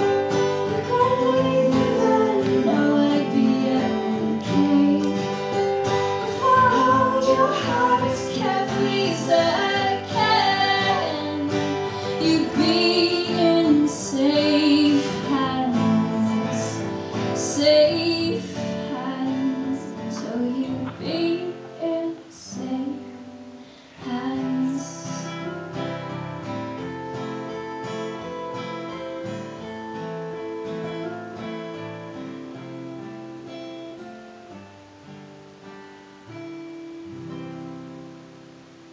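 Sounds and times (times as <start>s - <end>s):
woman singing: 0.0s - 26.0s
acoustic guitars strummed and picked: 0.0s - 38.9s.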